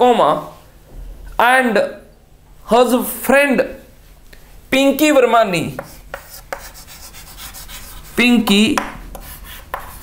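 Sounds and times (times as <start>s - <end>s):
chalk scratching on chalkboard: 5.7s - 10.0s
chalk tapping: 5.7s - 10.0s.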